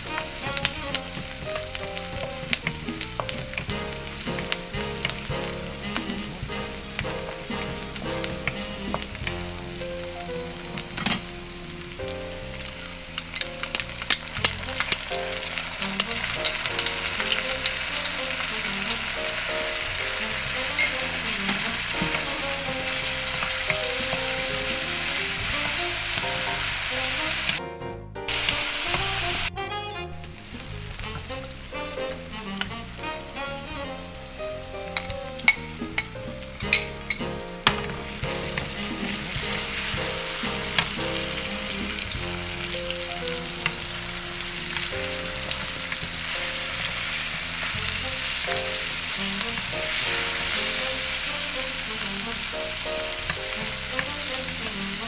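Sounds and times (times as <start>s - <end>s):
food sizzling in hot oil: 0.0s - 27.6s, 28.3s - 29.5s, 30.2s - 55.0s
wooden spatula scraping a wok: 0.0s - 27.6s, 28.3s - 29.5s, 30.2s - 55.0s.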